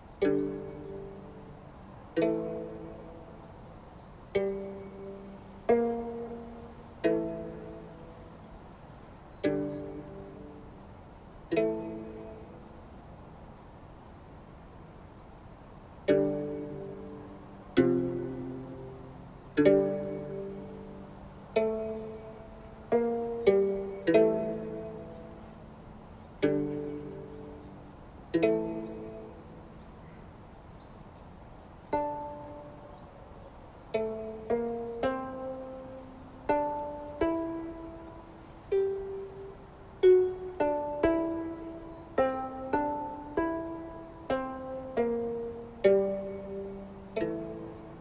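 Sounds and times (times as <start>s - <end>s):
plucked string instrument music: 0.0s - 8.7s, 9.3s - 13.0s, 16.0s - 30.1s, 31.8s - 33.1s, 33.9s - 48.0s.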